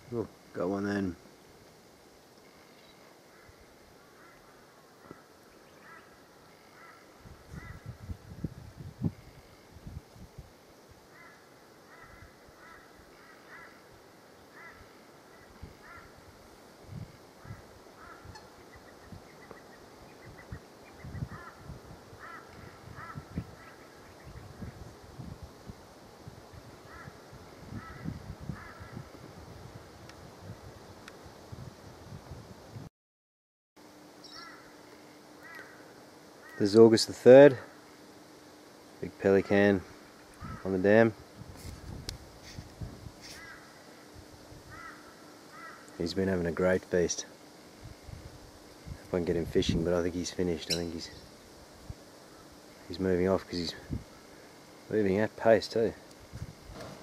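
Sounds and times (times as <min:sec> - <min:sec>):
faint bird calls: 0:02.3 - 0:08.0, 0:11.0 - 0:16.3, 0:17.3 - 0:24.7, 0:26.8 - 0:29.1, 0:34.2 - 0:36.8, 0:39.4 - 0:40.8, 0:43.2 - 0:44.1, 0:44.7 - 0:46.0, 0:50.6 - 0:51.5, 0:52.2 - 0:52.9.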